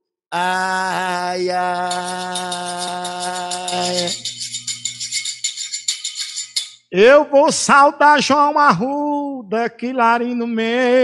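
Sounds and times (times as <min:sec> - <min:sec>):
hand shaker rhythm: 0:01.0 - 0:06.9.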